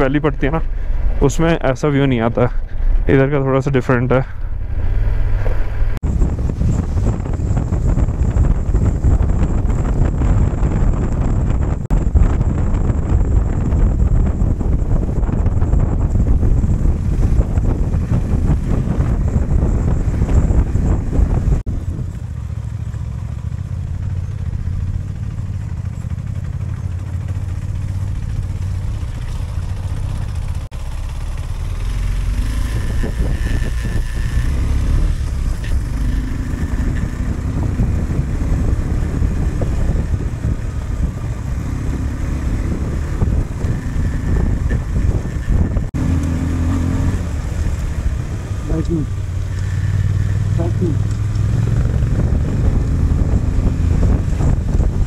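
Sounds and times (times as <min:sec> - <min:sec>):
wind on microphone: 0:04.0 - 0:22.6, 0:31.4 - 0:55.0
motorcycle engine running: 0:05.4 - 0:55.0.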